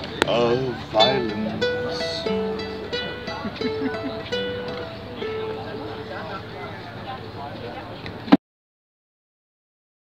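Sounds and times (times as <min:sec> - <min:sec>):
acoustic guitar playing: 0:00.0 - 0:07.5
people talking: 0:00.0 - 0:08.4.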